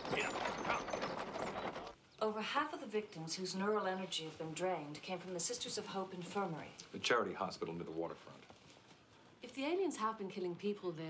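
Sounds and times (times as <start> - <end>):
carriage wheels rattling: 0.0 - 2.0
hooves clip-clopping: 0.0 - 2.0, 3.3 - 9.6.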